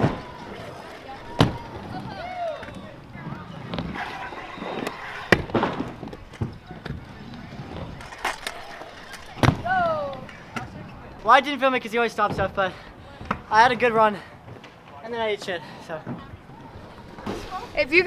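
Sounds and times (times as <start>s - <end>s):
voices in background: 0.0s - 18.0s.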